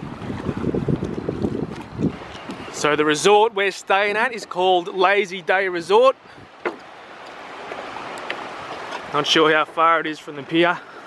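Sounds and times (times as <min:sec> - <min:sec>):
sea water washing around jetty: 0:00.0 - 0:11.0
footstep on wooden boards: 0:06.5 - 0:07.0.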